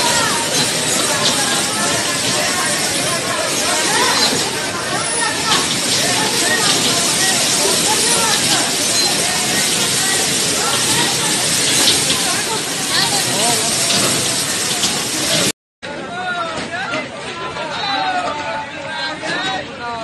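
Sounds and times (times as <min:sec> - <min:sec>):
loud steady hiss: 0:00.0 - 0:15.5
men calling and chattering: 0:00.0 - 0:20.0.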